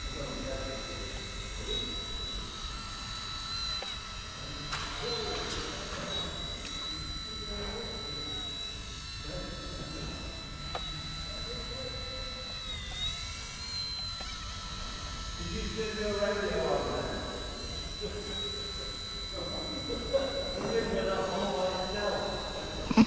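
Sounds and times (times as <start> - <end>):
toy helicopter rotor whine: 0.0 - 23.0.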